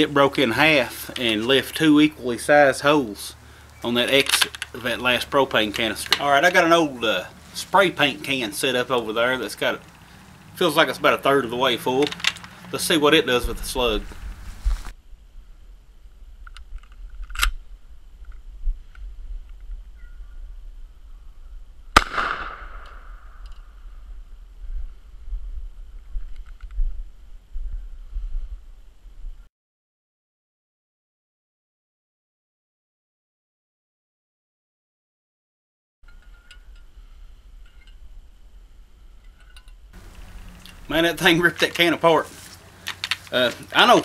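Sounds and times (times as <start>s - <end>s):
gun handling clicks: 4.2s - 4.8s, 5.7s - 6.3s, 12.0s - 12.7s, 16.5s - 17.6s, 42.7s - 43.6s
wind rumble: 13.3s - 29.5s
shotgun shot: 22.0s - 23.4s.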